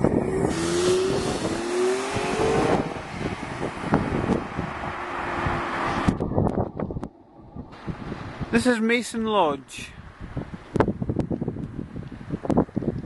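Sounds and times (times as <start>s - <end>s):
car engines: 0.0s - 9.0s
tyre road noise: 0.0s - 13.0s.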